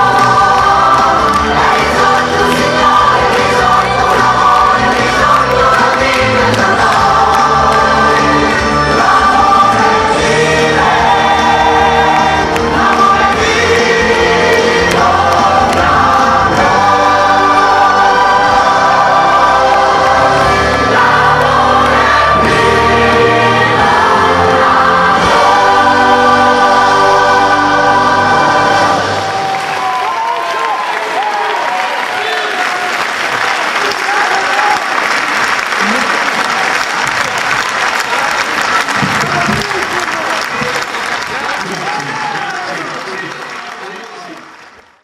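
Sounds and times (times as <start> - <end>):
choir singing: 0.0 - 29.8
musical accompaniment: 0.0 - 30.1.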